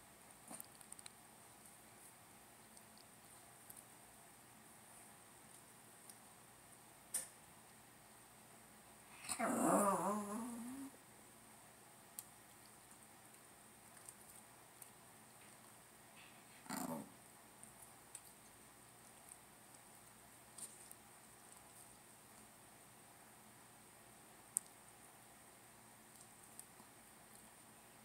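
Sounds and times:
dog growling whine: 9.2 - 11.0, 16.6 - 17.2.

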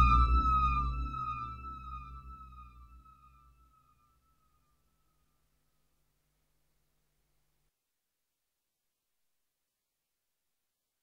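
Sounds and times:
synthesizer tone sliding downward: 0.0 - 2.8
low synthesizer drone: 0.0 - 3.2.

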